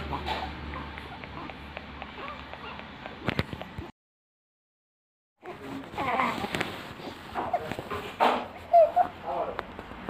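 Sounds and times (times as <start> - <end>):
baby cooing: 5.4 - 6.6.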